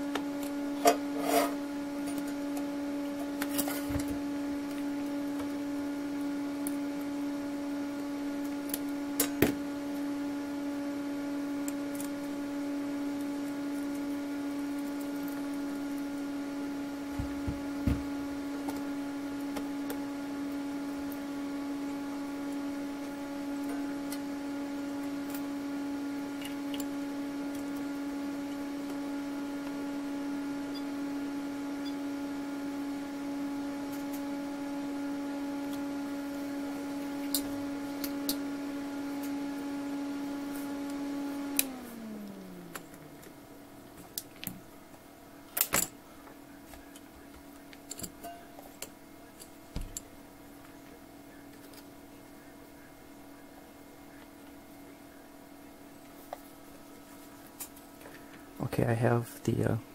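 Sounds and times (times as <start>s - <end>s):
cooling fan hum: 0.0s - 59.9s.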